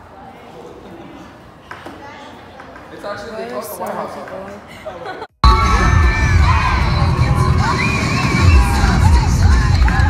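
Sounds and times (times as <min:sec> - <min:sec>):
crowd screaming and cheering: 0:05.4 - 0:10.0
music with heavy bass beat: 0:05.4 - 0:10.0.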